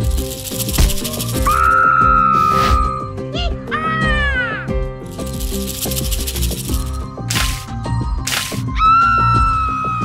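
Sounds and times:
rattling sound effect: 0:00.0 - 0:01.7, 0:05.1 - 0:08.6
children's music: 0:00.0 - 0:09.7.

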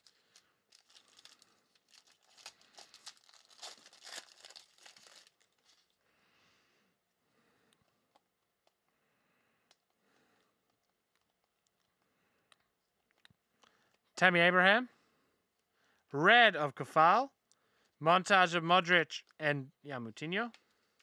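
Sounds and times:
cards rustling: 0:00.0 - 0:05.9
foil wrapper crinkling: 0:00.0 - 0:06.0.

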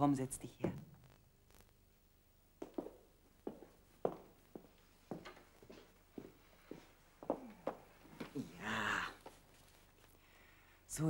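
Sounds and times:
person sitting on sofa: 0:00.4 - 0:10.7
footsteps in small room: 0:02.4 - 0:08.5, 0:09.2 - 0:10.4.

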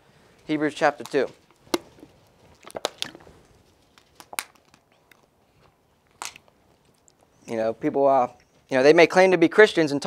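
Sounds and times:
thin pages flicking: 0:01.0 - 0:04.9.

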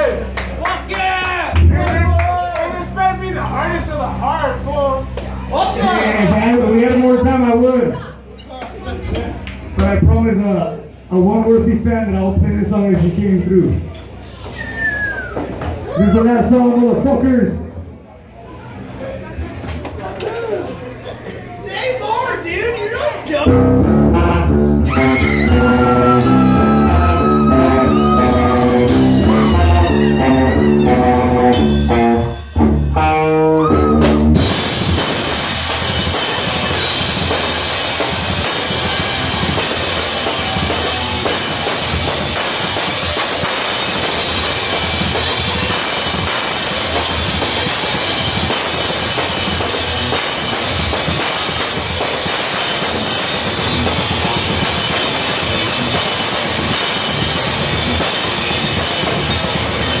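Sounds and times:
live band playing loud: 0:01.5 - 0:07.4, 0:23.5 - 1:00.0
pitched notes: 0:23.4 - 1:00.0
drums and cymbals: 0:24.8 - 0:33.2, 0:33.9 - 1:00.0.

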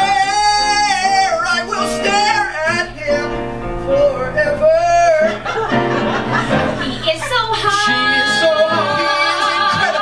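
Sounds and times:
voices singing with vibrato: 0:03.8 - 0:10.0.

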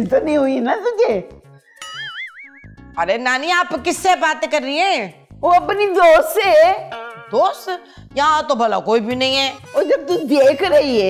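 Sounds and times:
woman speaking: 0:03.0 - 0:11.0.

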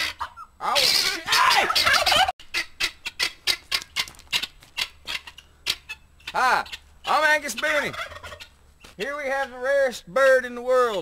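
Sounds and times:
guineafowl harsh clicking calls: 0:00.0 - 0:09.9.

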